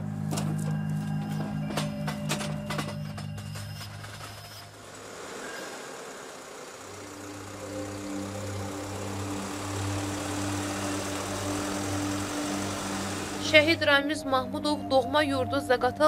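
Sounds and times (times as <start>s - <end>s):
van engine pulling away: 0.0s - 13.9s
low musical drone: 6.8s - 16.0s.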